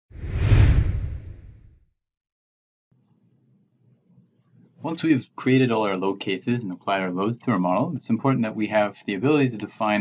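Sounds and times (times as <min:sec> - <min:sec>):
whoosh with deep rumble: 0:00.1 - 0:01.8.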